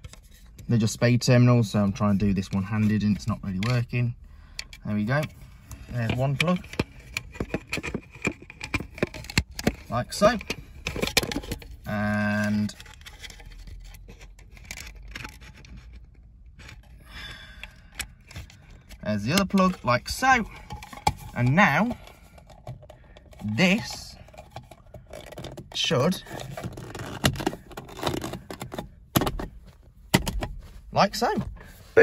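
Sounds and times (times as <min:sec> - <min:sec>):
metal connector scraping and clicking: 0:02.5 - 0:16.9.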